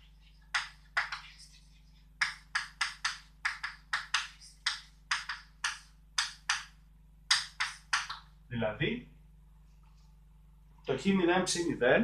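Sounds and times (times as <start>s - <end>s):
chalk writing on blackboard: 0.0s - 6.6s, 7.3s - 8.2s.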